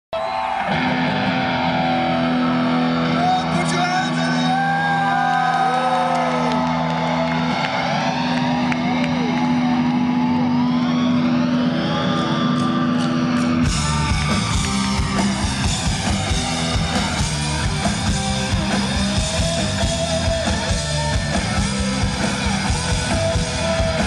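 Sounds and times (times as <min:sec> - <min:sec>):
electric guitars with feedback: 0:00.2 - 0:24.0
full rock band playing: 0:00.2 - 0:24.0.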